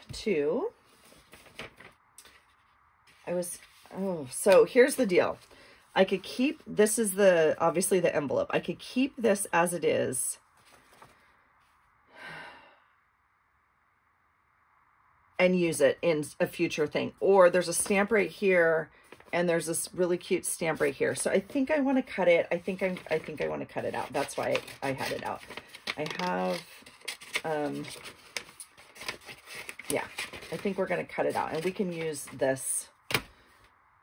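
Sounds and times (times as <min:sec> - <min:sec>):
paper envelope rustling: 0:00.8 - 0:05.5, 0:10.5 - 0:11.8, 0:19.0 - 0:19.4, 0:20.7 - 0:32.4
woman's breathy sigh: 0:12.1 - 0:13.0.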